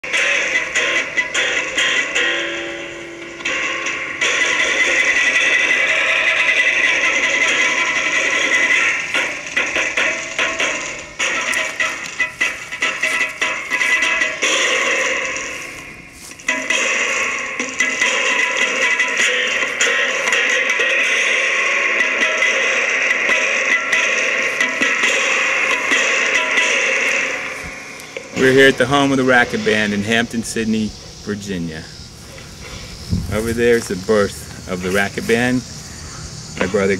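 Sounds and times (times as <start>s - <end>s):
distorted electric guitar: 0.0s - 36.9s.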